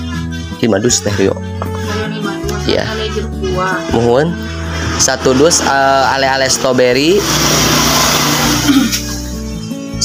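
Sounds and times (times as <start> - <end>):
background music: 0.0 - 10.0
motorcycle passing: 3.0 - 8.9.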